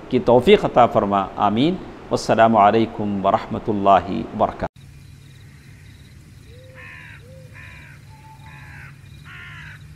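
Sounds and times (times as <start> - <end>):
crows cawing: 5.4 - 9.9.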